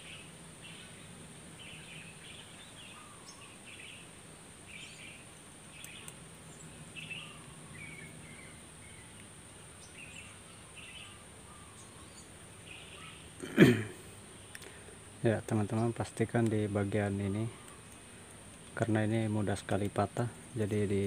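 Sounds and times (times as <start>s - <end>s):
small birds chirping: 0.0s - 21.0s
light clicks: 5.8s - 6.2s.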